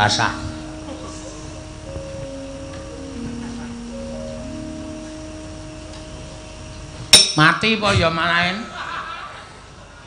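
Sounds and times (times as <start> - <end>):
steady held musical note: 0.0 - 8.5
low background hum: 0.0 - 10.0.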